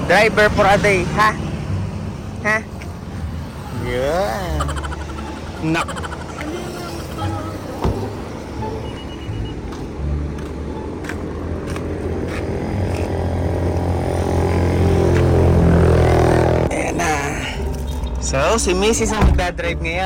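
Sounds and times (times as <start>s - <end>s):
vehicle engine: 0.0s - 19.0s
road traffic: 0.0s - 20.0s.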